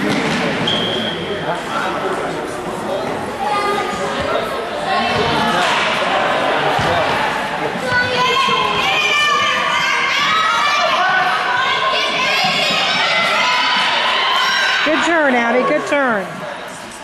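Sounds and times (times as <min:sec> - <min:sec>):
children shouting: 0:07.9 - 0:15.1.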